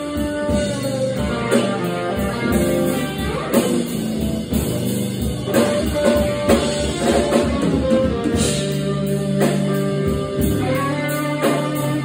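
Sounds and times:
drum kit: 0.0 - 12.0.

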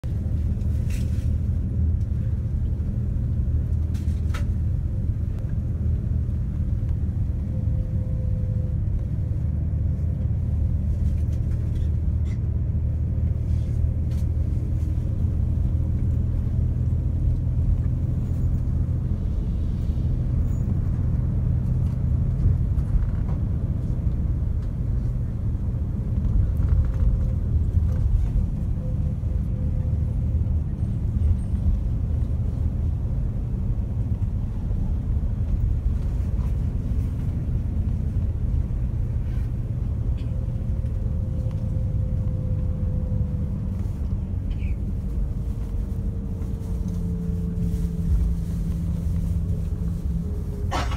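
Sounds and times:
road noise inside vehicle: 0.0 - 50.9
vehicle engine rumble: 0.0 - 50.9.

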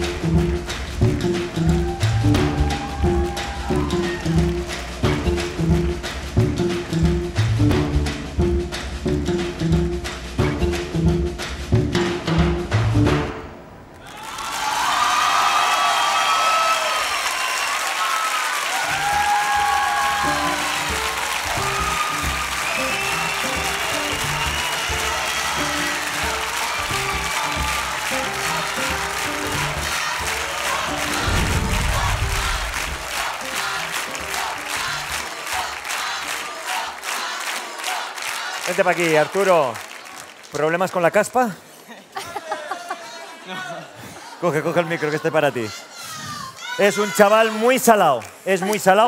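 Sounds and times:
audience applauding and cheering: 0.0 - 11.9, 13.9 - 41.6, 46.6 - 49.0.

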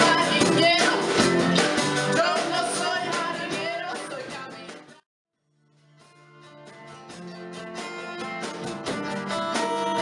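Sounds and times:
woman singing: 0.0 - 4.8
live rock band playing: 0.0 - 5.0, 6.0 - 10.0.

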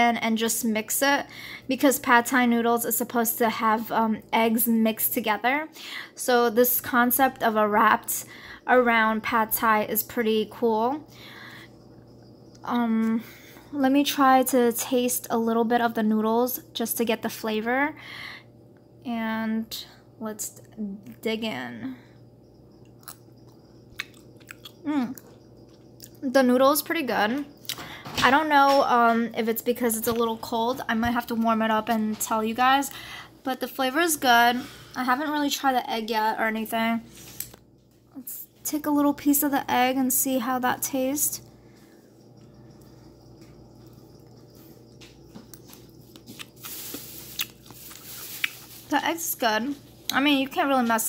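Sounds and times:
low steady hum: 0.0 - 51.0
person chewing noodles: 22.7 - 26.2, 43.7 - 48.8
small mouth clicks: 22.9 - 26.2.

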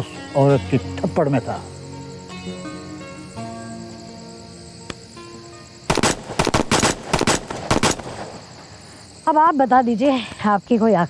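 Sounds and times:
pistol gunfire volley: 5.9 - 8.4.

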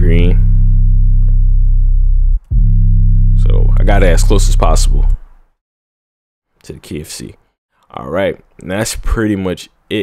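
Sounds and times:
deep bass note: 0.0 - 5.2.

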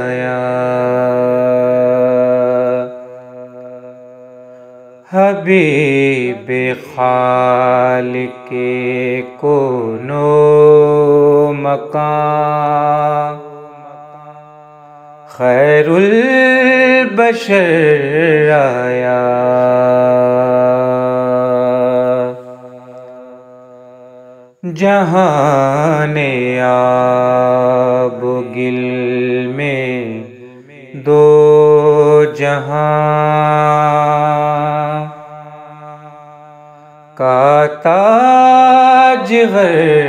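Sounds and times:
man singing a long note: 0.0 - 14.0, 37.2 - 40.0.

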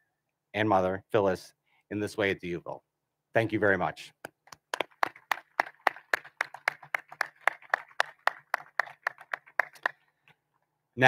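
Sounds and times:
hands clapping: 4.2 - 10.1.

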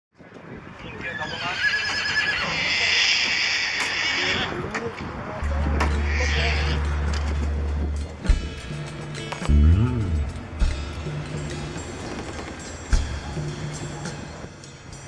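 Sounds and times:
horse whinnying: 1.0 - 4.6, 6.0 - 6.8.

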